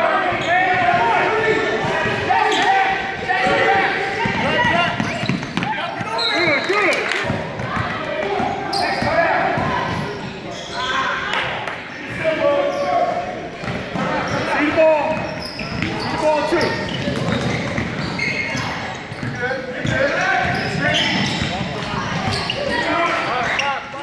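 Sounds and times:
indistinct voices echoing: 0:00.0 - 0:24.0
sneakers squeaking: 0:00.1 - 0:24.0.

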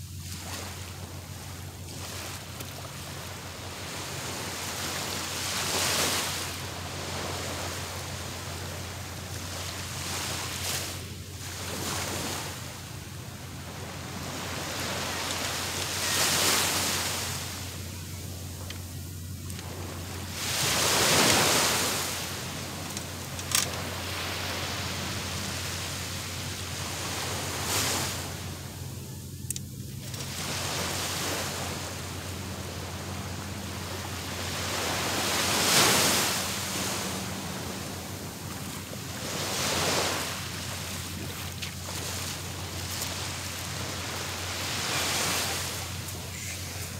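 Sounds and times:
sea waves breaking on beach: 0:00.0 - 0:46.9.

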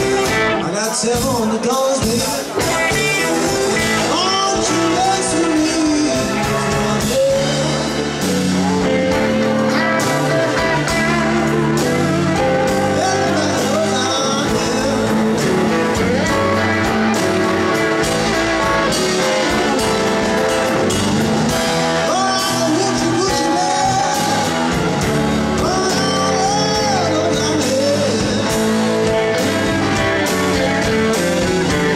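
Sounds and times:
electric guitar lead: 0:00.0 - 0:01.0, 0:02.4 - 0:31.9
drums bass and keyboard: 0:00.0 - 0:31.9
live blues-rock band playing: 0:00.0 - 0:31.9.

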